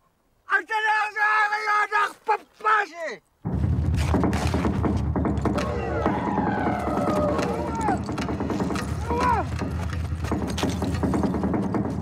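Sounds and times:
man shouting: 0.5 - 3.2, 9.0 - 9.5.

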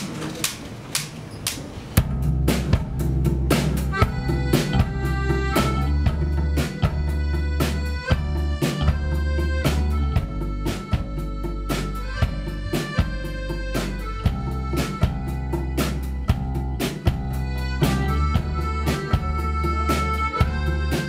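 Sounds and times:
drums steady beat: 2.0 - 21.0
live band playing slow song: 2.0 - 21.0.

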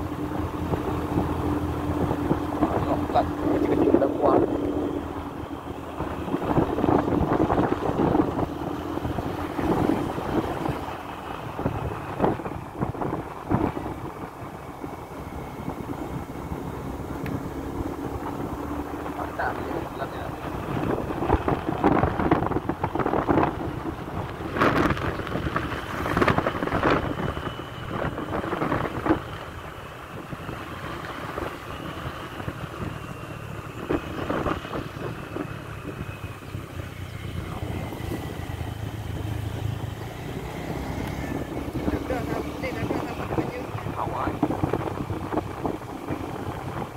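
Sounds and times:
motorcycle engine and tyres: 0.0 - 46.9
wind buffeting microphone: 0.0 - 46.9.

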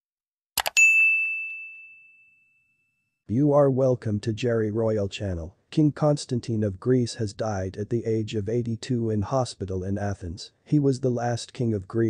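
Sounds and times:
notification bell ding: 0.6 - 3.0.

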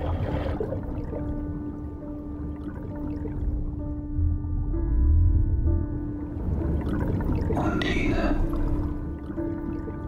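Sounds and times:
low rumble of water: 0.0 - 10.0.

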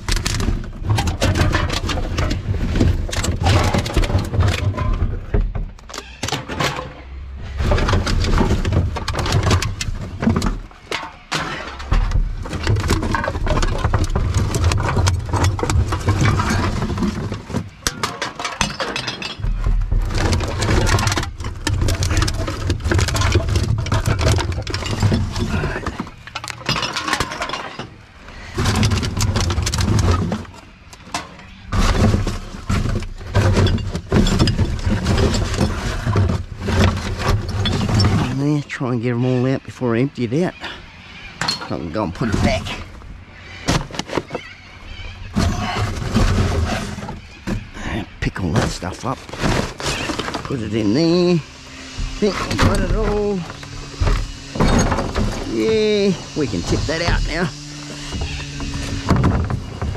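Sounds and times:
rubbish rustling and knocking: 0.0 - 39.9, 40.5 - 59.9
plastic bottles crinkling: 7.0 - 38.8, 41.4 - 59.9.

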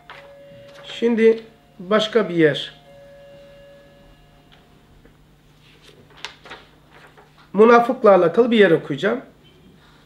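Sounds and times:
paper rustling: 5.6 - 7.5.

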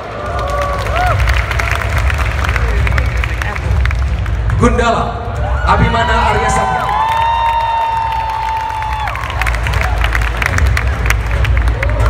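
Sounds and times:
crowd cheering: 0.0 - 3.8, 5.3 - 12.0
clapping and applause: 0.0 - 5.6, 6.2 - 12.0.

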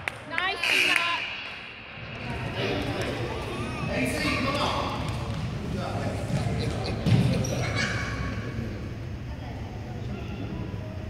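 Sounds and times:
indistinct echoing voices: 0.1 - 11.0.

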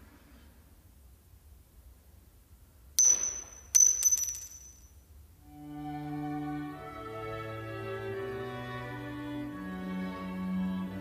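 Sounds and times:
metal ring bouncing on floor: 3.0 - 5.0.

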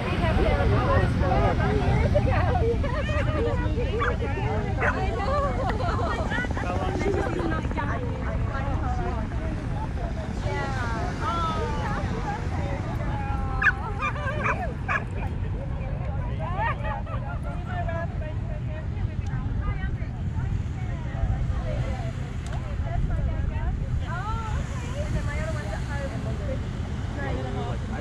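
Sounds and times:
background chatter: 0.0 - 28.0
wind rumble on microphone: 0.0 - 28.0
dogs barking: 4.0 - 4.2, 4.8 - 5.0, 13.6 - 15.2.

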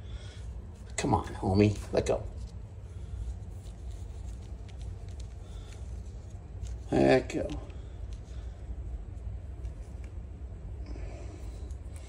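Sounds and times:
low steady rumble: 0.0 - 12.0
leafy stems rustling: 0.1 - 10.3.

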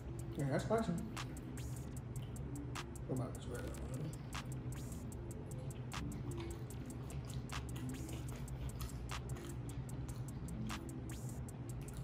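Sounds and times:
background music with beat: 0.0 - 12.0
person chewing food: 1.1 - 3.0, 3.6 - 12.0.

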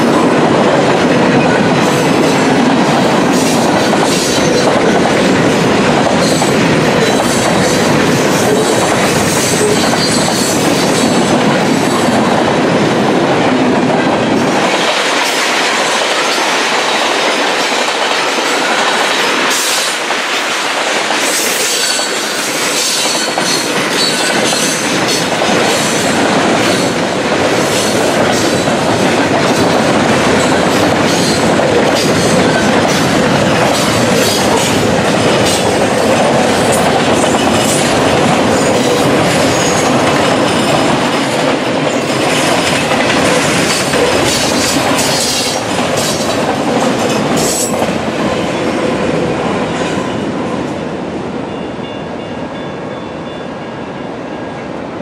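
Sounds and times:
train wheels clacking over rail joints: 0.0 - 12.5, 13.4 - 50.1.

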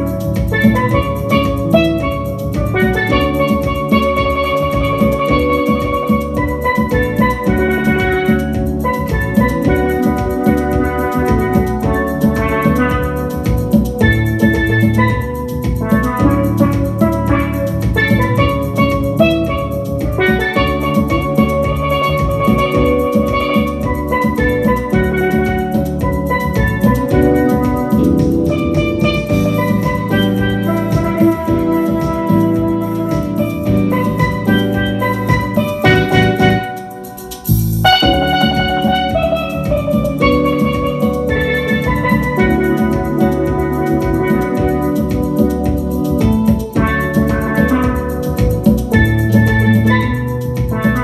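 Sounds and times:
backing track with bass and drums: 0.0 - 51.0
steel pans played with mallets: 0.0 - 51.0.

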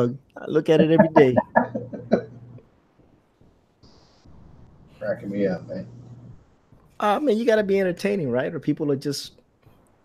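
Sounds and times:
man's voice: 0.0 - 2.2
soft hiss: 0.0 - 10.0.

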